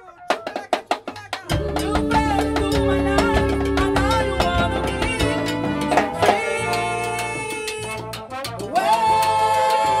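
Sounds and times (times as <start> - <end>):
percussion: 0.0 - 10.0
salsa band music: 0.4 - 10.0
horns: 1.6 - 10.0.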